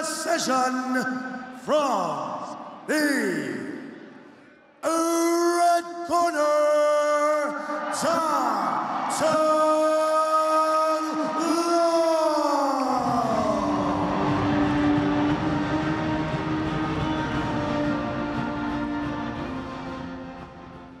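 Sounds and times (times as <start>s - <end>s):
arena noise: 0.0s - 21.0s
music: 13.0s - 21.0s.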